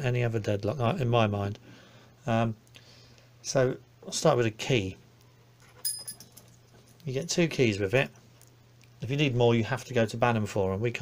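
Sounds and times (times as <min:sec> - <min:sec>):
faint handling sounds: 0:05.1 - 0:09.0
keys clinking: 0:05.6 - 0:07.1.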